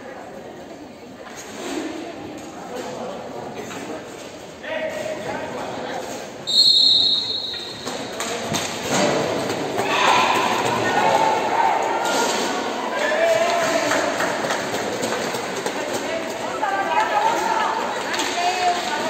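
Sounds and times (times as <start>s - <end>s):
referee's whistle: 6.5s - 8.0s
shouting voices echoing: 9.8s - 14.1s.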